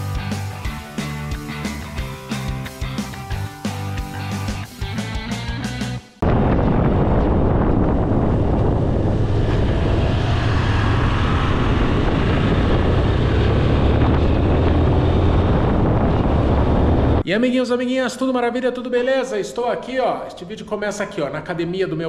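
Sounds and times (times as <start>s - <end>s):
wind noise on microphone: 6.2s - 17.2s
motorcycle engine and road noise: 6.8s - 17.2s.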